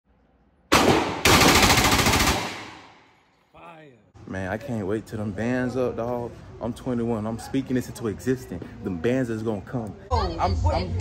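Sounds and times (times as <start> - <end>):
submachine gun firing bursts: 0.7 - 2.8
gunshot echoes indoors: 0.7 - 3.1.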